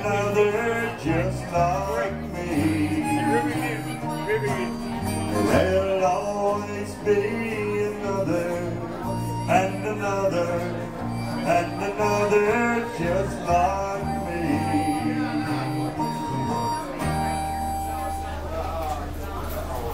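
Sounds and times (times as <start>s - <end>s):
harmonica melody: 0.0s - 18.9s
acoustic guitars strumming: 0.0s - 19.9s.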